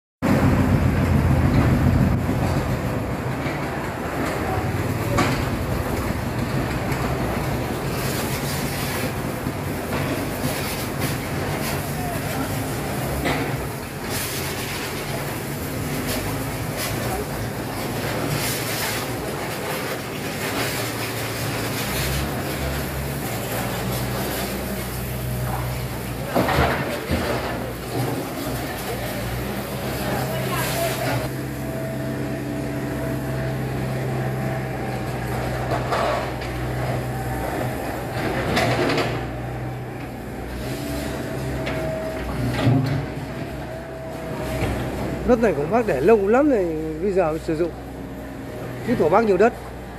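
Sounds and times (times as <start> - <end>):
diesel engines running: 0.2 - 49.9.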